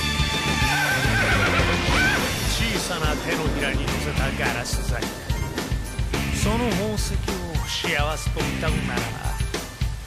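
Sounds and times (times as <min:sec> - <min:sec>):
soundtrack music: 0:00.0 - 0:10.0
horse whinnying: 0:00.2 - 0:02.4.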